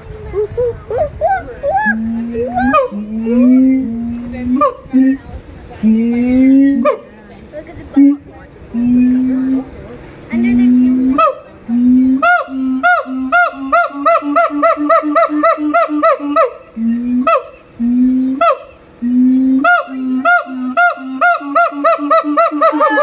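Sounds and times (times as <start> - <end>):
siamangs whooping calls: 11.1 - 23.0.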